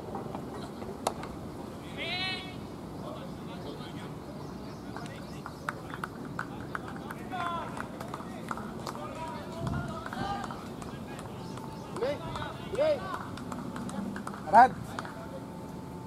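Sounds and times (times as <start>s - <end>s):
distant voices and calls: 0.0s - 16.0s.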